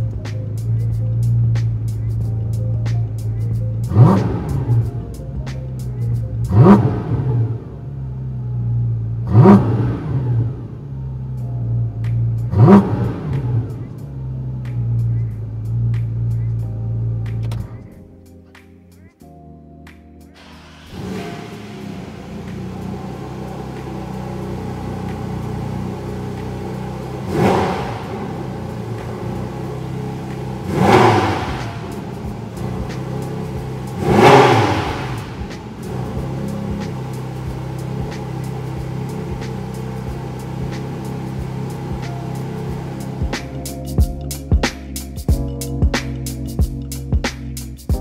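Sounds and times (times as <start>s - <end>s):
car engine idling and revving: 0.0s - 18.0s, 20.3s - 48.0s.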